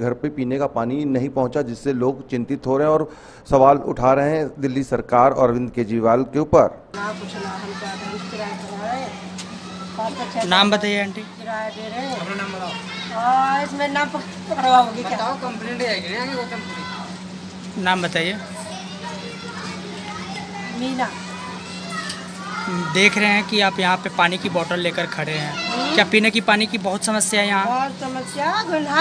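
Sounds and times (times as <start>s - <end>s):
low mechanical hum: 6.7s - 29.0s
people talking: 7.0s - 9.3s
people and children talking: 7.0s - 29.0s.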